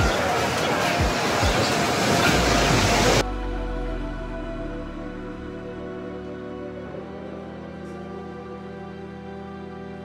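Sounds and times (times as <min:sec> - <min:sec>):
loud cafe ambience: 0:00.0 - 0:03.5
soft background music: 0:00.0 - 0:10.0.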